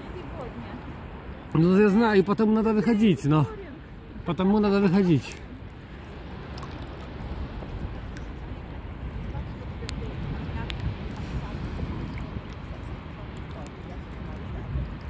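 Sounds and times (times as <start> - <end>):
wind rumbling on microphone: 0.0 - 15.0.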